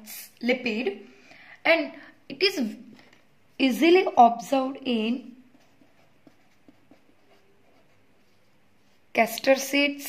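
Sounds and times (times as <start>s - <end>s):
pen writing on paper: 5.5s - 8.4s.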